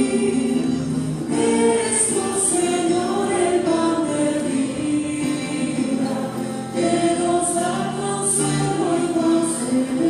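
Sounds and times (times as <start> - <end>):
church choir singing a hymn: 0.0 - 10.0.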